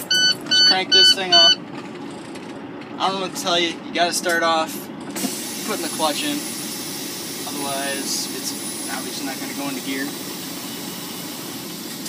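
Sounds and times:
diesel truck engine running: 0:00.0 - 0:12.0.

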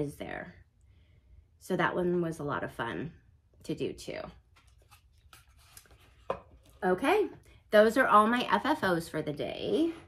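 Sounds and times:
woman speaking: 0:00.0 - 0:00.6, 0:01.6 - 0:04.4, 0:06.8 - 0:10.0.

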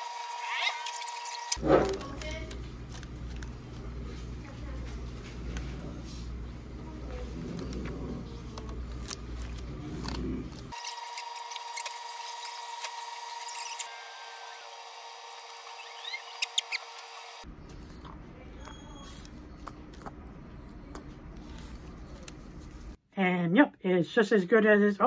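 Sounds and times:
chewing crunchy taco shell: 0:00.8 - 0:04.1, 0:07.3 - 0:12.6.

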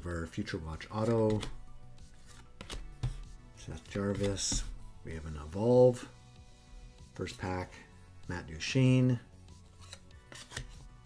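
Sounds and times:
trading cards rubbing together: 0:01.0 - 0:04.7, 0:09.6 - 0:11.0
card scrapes: 0:09.6 - 0:10.9.

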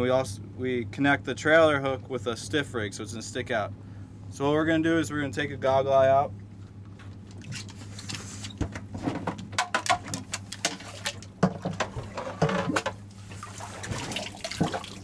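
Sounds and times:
steady low hum: 0:00.0 - 0:15.0
water splashing and sloshing: 0:06.4 - 0:15.0.

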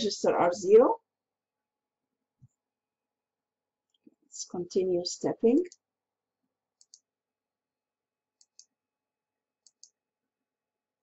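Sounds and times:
computer mouse clicks: 0:05.6 - 0:05.9, 0:06.8 - 0:07.1, 0:08.4 - 0:08.8, 0:09.6 - 0:10.0.

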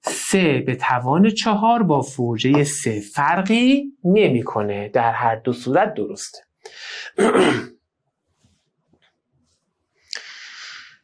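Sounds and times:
man clearing throat: 0:07.1 - 0:07.7.

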